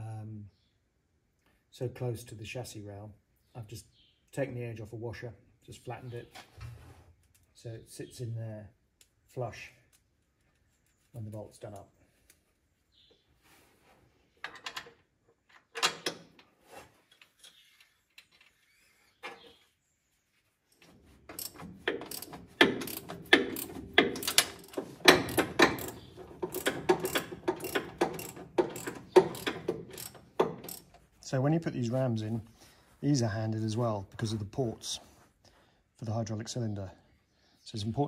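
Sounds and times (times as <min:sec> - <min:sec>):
ratchet wrench clicking: 0:21.3 - 0:30.9.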